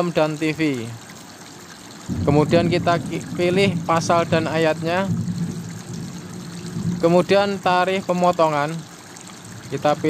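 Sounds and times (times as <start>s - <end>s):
steady rushing noise: 2.1s - 7.2s.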